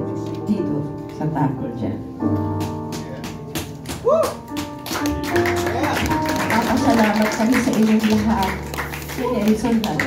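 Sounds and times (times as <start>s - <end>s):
keyboard chords: 0.0s - 10.0s.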